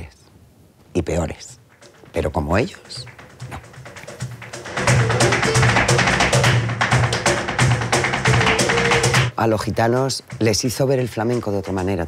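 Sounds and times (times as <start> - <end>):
flamenco music: 1.5 - 12.0
sharp rhythmic strikes: 1.6 - 12.0.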